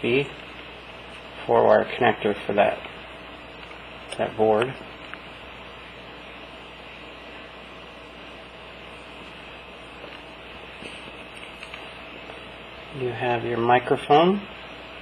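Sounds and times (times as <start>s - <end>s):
faint hum: 0.0s - 15.0s
steady background hiss: 0.0s - 15.0s.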